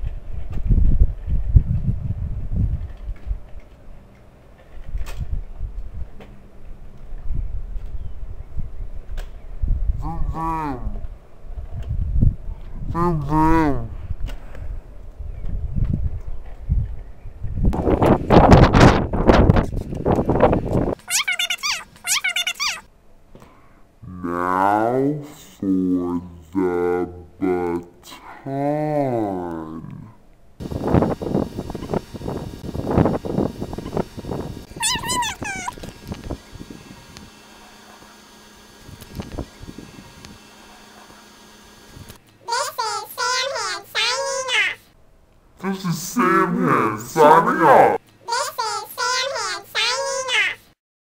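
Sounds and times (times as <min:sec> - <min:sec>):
girl making silly noises: 0:21.0 - 0:22.9, 0:34.7 - 0:35.8
high squeals: 0:34.7 - 0:35.8.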